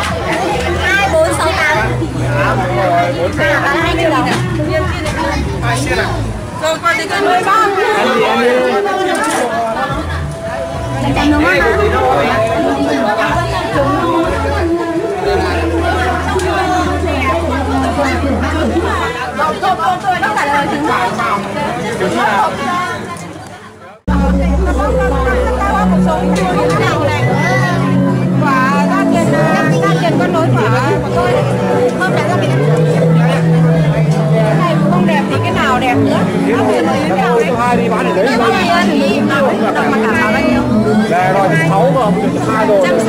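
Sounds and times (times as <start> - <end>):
people chattering: 0.0 - 43.0
people talking over each other: 0.0 - 43.0.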